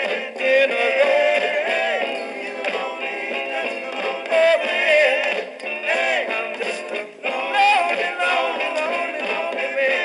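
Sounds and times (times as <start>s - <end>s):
soul record with male vocals: 0.0s - 10.0s.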